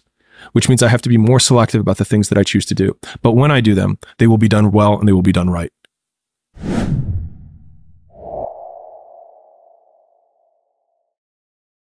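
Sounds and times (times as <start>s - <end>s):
deep whoosh with rumble: 6.6s - 9.8s
sustained ringing tone: 8.4s - 10.6s.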